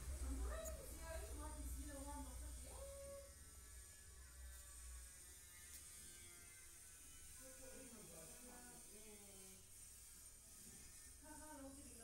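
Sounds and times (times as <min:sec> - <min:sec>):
low steady hum: 0:00.0 - 0:05.2.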